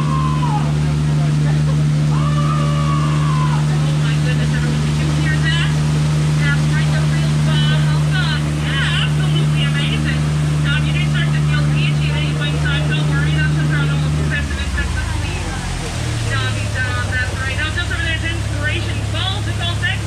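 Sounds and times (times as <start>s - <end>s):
boat motor humming: 0.0s - 20.0s
water rushing: 0.0s - 20.0s.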